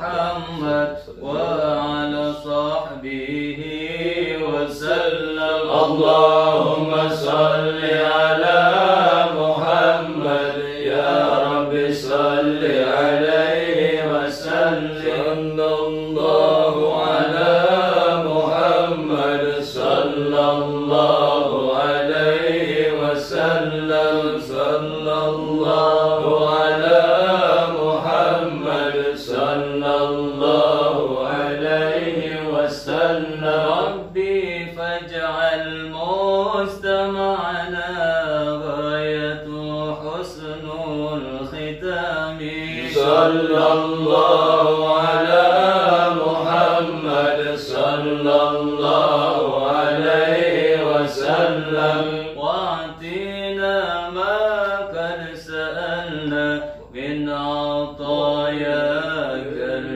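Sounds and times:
men chanting melodic invocation: 0.0s - 59.9s.

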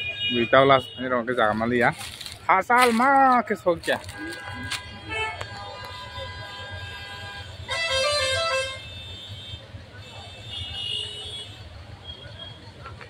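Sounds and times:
vehicle horn: 0.0s - 1.5s, 4.0s - 12.6s
street traffic rumble: 0.0s - 13.0s.

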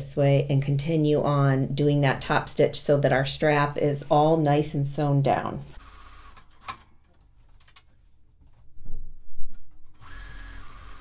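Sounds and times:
sewing machine running: 5.8s - 6.4s, 10.0s - 11.0s.

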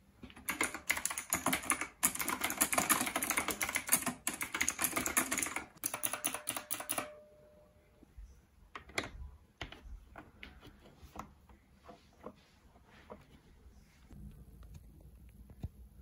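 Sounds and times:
fast typing on mechanical keyboard: 0.4s - 7.1s.

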